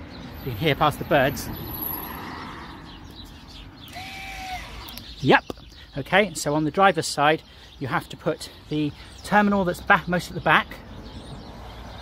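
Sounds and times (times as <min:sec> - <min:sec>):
bird call: 0:03.1 - 0:05.8.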